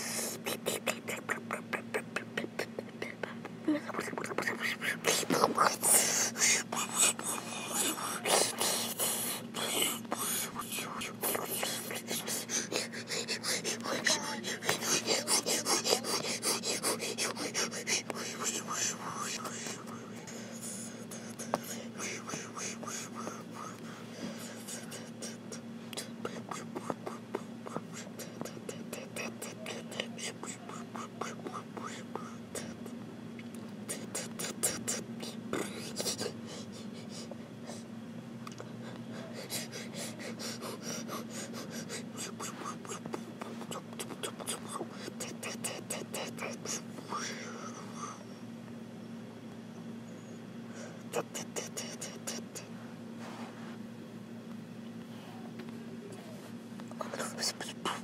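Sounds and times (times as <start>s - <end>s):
person whispering: 0.0s - 32.8s, 33.9s - 37.3s, 39.2s - 48.2s, 51.0s - 52.7s, 56.9s - 58.0s
steady low hum: 0.0s - 58.0s
breathy hissing bursts: 5.8s - 25.2s.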